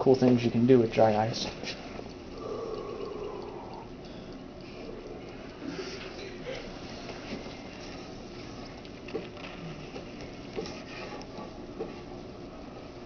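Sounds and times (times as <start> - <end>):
faint clicks and ticks: 1.4 - 11.5.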